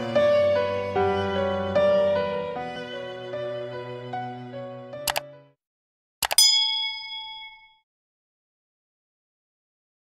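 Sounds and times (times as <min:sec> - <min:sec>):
music with bowed strings: 0:00.0 - 0:05.0
bright bell-like ding: 0:06.2 - 0:07.8.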